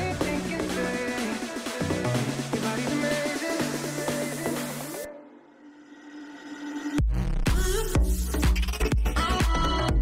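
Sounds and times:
music beat: 0.0s - 5.1s, 7.0s - 10.0s.

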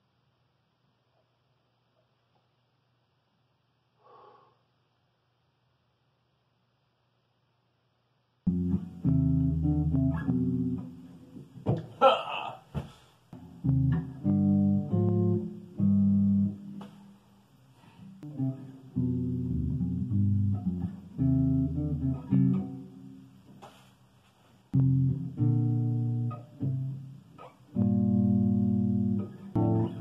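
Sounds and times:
electric bass plucked notes: 8.5s - 11.3s, 13.4s - 16.8s, 18.2s - 22.9s, 24.8s - 30.0s.

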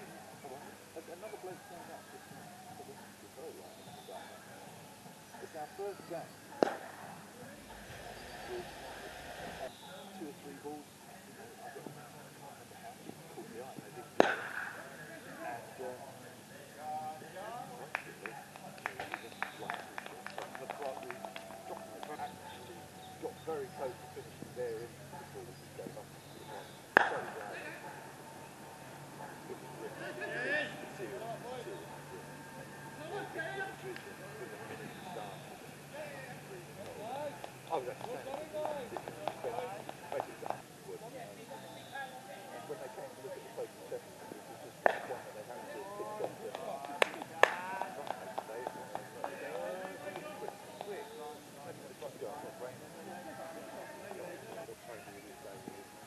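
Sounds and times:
faint distant voices: 0.0s - 56.0s
cricket bat striking ball: 14.2s - 14.8s, 27.0s - 27.3s.

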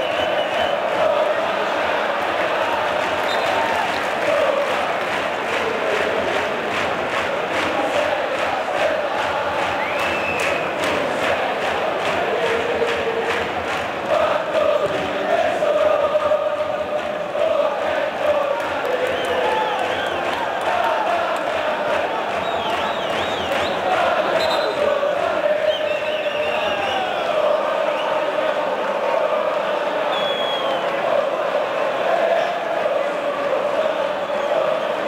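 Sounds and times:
crowd chanting: 0.0s - 35.0s
crowd noise: 0.0s - 35.0s.

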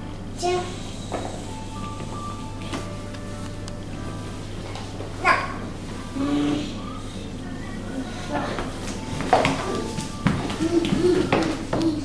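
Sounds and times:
child vocalising: 0.4s - 0.8s, 5.2s - 6.8s
shoes knocking on tile floor: 8.6s - 12.0s.

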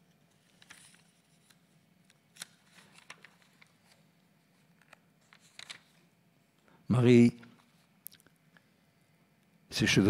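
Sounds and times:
book pages rustling: 0.3s - 1.6s, 2.3s - 6.0s.

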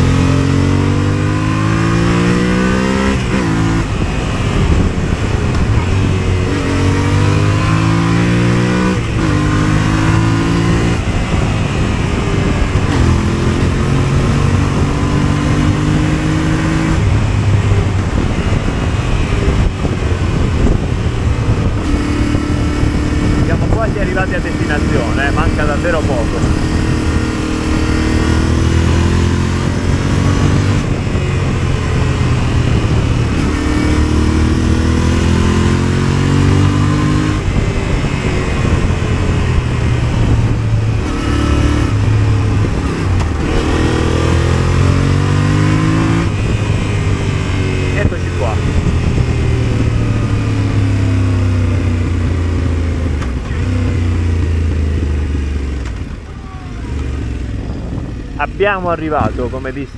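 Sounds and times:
motorcycle engine revving: 0.0s - 59.9s
wind rush on microphone: 0.0s - 59.9s.

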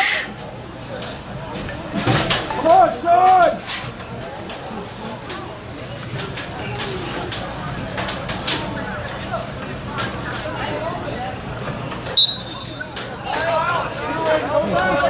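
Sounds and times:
distant shouting and chatter: 0.0s - 15.0s.

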